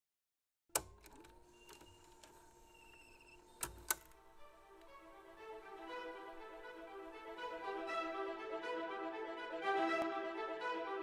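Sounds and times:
small mechanical clicks: 0.8 - 4.9
sharp clicks: 0.8 - 5.0
faint electrical hum: 0.8 - 7.8.

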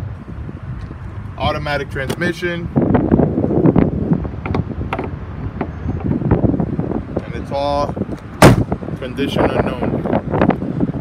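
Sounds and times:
wind rumbling on microphone: 0.0 - 11.0.

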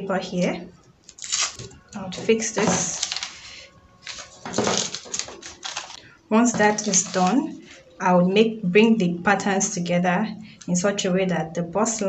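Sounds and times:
paper rustling and crinkling: 1.1 - 7.6.

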